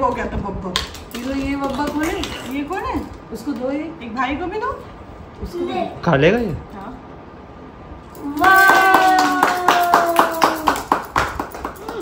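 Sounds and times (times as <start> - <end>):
long voiced cheer: 8.2 - 11.0
people clapping in rhythm: 8.4 - 12.0.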